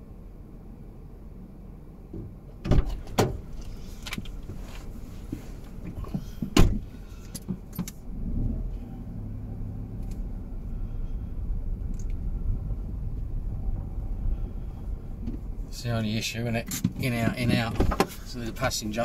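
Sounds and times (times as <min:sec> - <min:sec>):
car engine hum: 0:00.0 - 0:19.0
road noise: 0:00.0 - 0:19.0.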